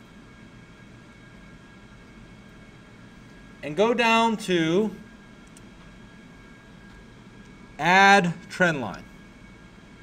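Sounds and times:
microphone hiss and hum: 0.0s - 10.0s
man talking: 3.6s - 5.0s, 7.8s - 9.1s.

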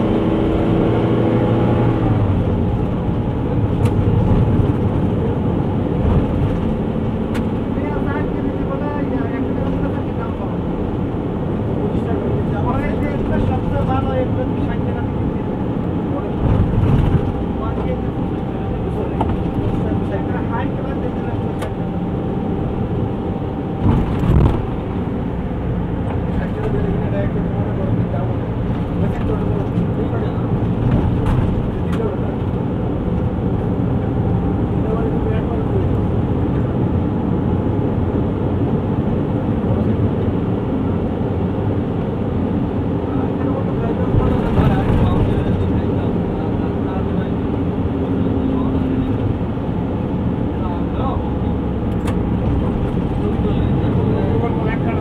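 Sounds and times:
engine and road noise in car: 0.0s - 55.0s.

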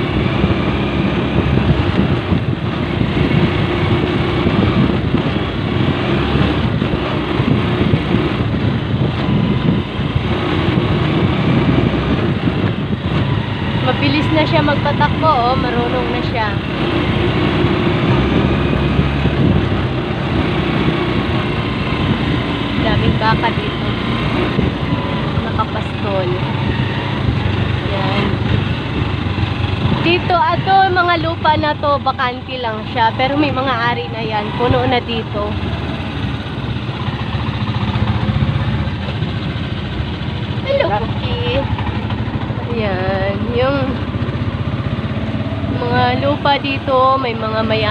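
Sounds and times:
motorcycle engine running: 0.0s - 47.9s.

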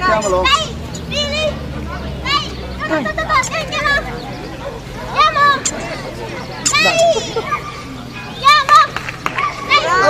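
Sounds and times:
high-pitched voices calling out: 0.0s - 10.0s.

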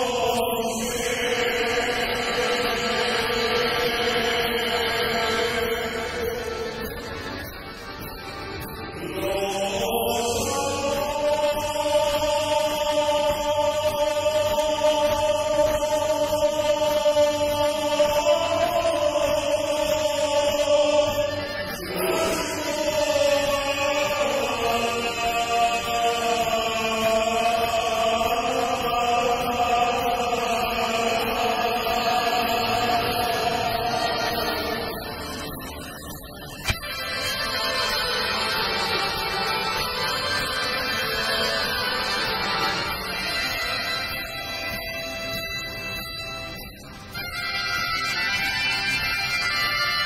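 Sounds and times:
crowd singing along: 0.0s - 46.2s.

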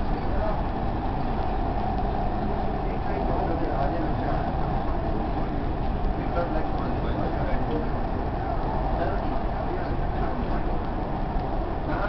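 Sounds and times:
indistinct passenger voices: 0.0s - 12.0s
train car rolling rumble: 0.0s - 12.0s.

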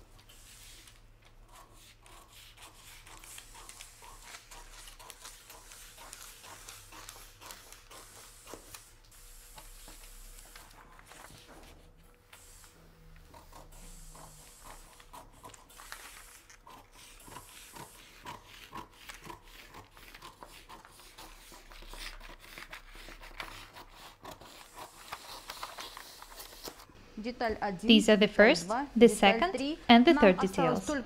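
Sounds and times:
paper rustling: 0.2s - 13.6s, 14.2s - 26.9s
scissors snipping paper: 0.8s - 11.4s, 13.3s - 26.8s.

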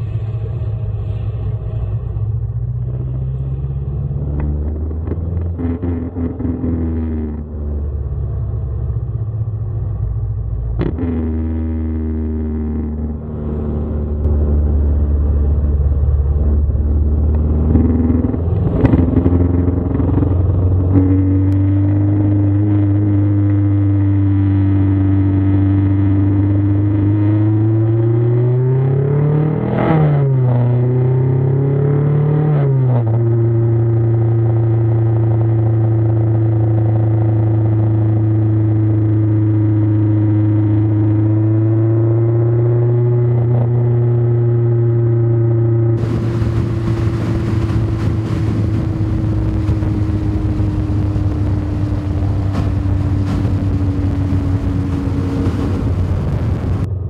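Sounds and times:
car engine running: 0.0s - 23.8s, 45.8s - 57.0s.

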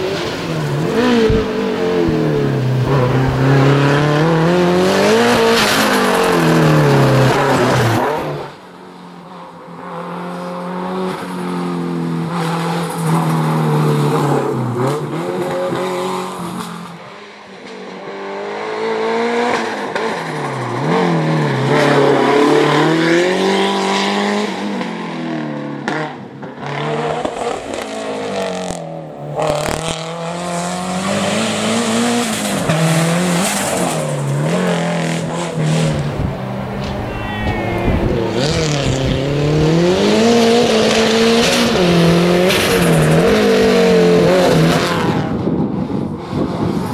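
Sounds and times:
race car engine revving: 0.0s - 8.6s, 18.0s - 46.9s.

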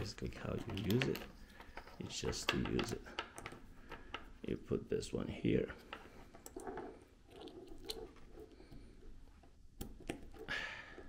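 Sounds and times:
cable and adapter handling: 0.4s - 4.3s.

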